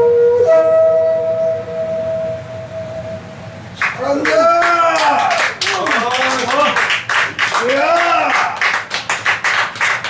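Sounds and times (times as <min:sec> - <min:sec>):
bamboo flute long note: 0:00.0 - 0:03.6.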